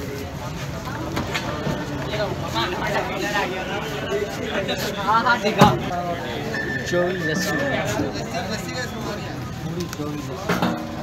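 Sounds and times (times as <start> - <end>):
people talking: 0.0 - 11.0
street traffic rumble: 0.0 - 11.0.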